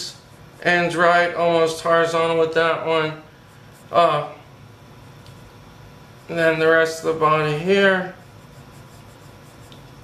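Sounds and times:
pencil sketching on paper: 0:00.1 - 0:01.1, 0:03.4 - 0:04.0, 0:05.0 - 0:10.0.

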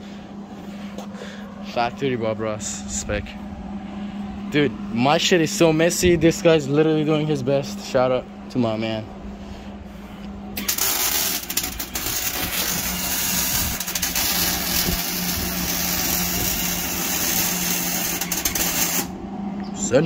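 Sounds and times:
electric arc welding crackling: 0:10.6 - 0:19.2.

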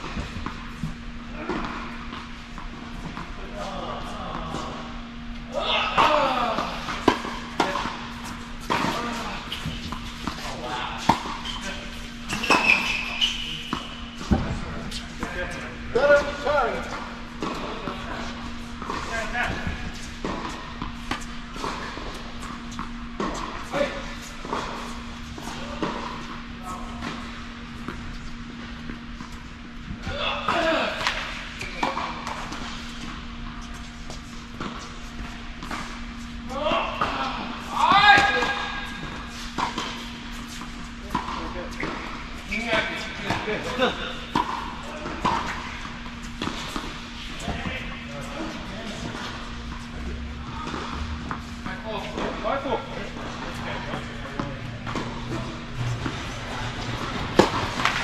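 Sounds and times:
steady low hum: 0:00.0 - 0:58.0
people talking: 0:19.0 - 0:19.8, 0:42.5 - 0:44.1, 0:47.4 - 0:49.3, 0:51.7 - 0:54.6
tennis balls struck and bouncing: 0:38.2 - 0:42.6, 0:43.2 - 0:47.6, 0:49.0 - 0:52.4, 0:53.2 - 0:58.0.

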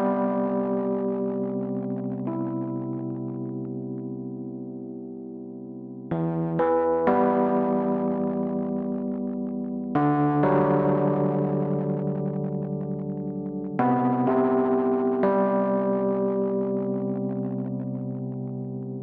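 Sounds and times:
sustained keyboard chords: 0:00.0 - 0:19.0.

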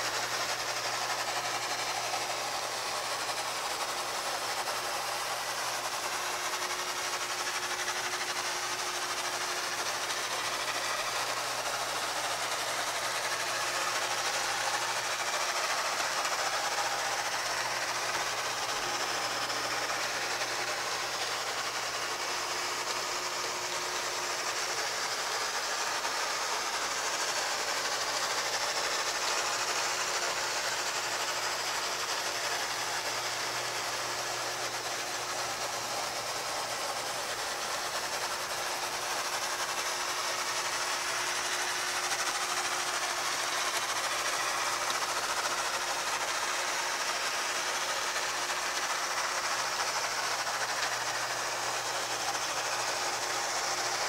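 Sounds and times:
constant hum: 0:00.0 - 0:22.6
machine whirring and hissing: 0:00.0 - 0:54.0.

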